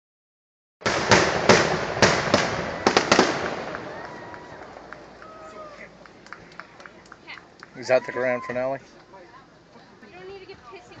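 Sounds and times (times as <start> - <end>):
fireworks bursting with echoing rumble: 0.8 - 5.2.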